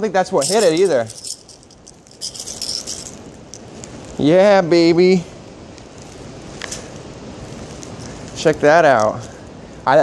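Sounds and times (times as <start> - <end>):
fishing lure rattling and hooks jangling: 0.3 - 3.7.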